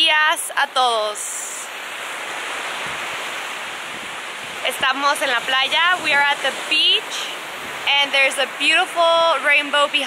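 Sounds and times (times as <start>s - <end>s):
waves breaking on sand beach: 0.0s - 10.0s.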